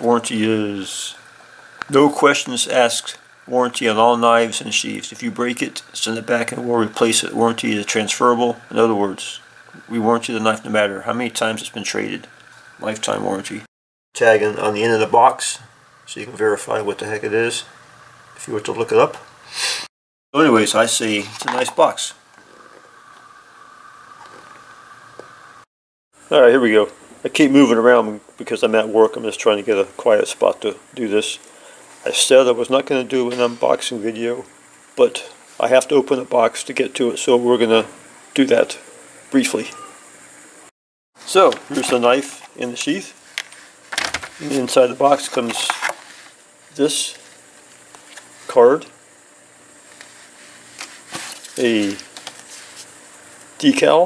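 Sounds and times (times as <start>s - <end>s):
steady high hum: 0.0s - 19.8s, 20.4s - 54.0s
faint hiss: 0.0s - 25.6s, 26.2s - 47.4s, 48.0s - 54.0s.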